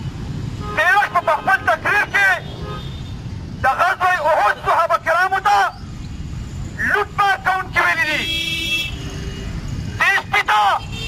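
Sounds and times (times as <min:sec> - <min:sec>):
street traffic rumble: 0:00.0 - 0:11.0
vehicle horn toot: 0:00.6 - 0:01.6, 0:02.4 - 0:03.2, 0:08.1 - 0:09.4, 0:10.8 - 0:11.0.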